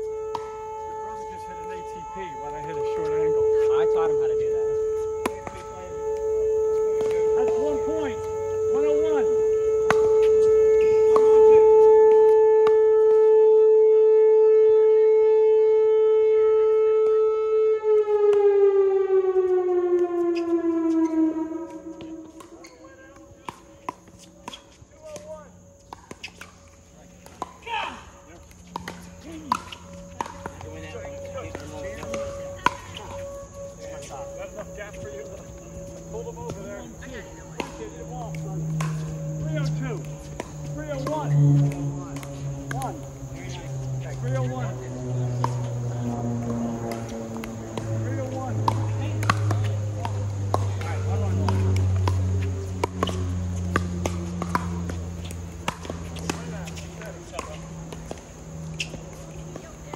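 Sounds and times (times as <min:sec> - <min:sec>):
warning siren: 0:00.0 - 0:59.9
paddles striking ball: 0:22.0 - 0:59.9.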